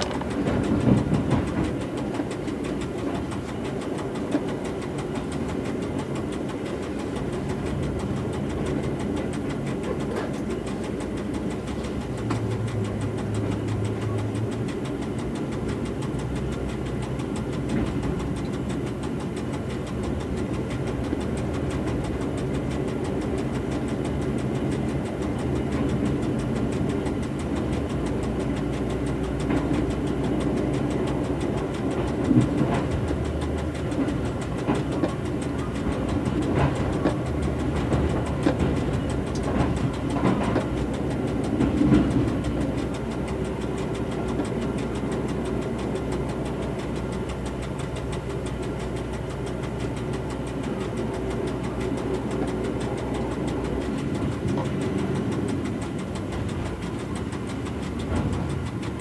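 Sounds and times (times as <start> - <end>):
railcar engine drone: 0.0 - 59.0
wheels clattering over points: 0.0 - 59.0.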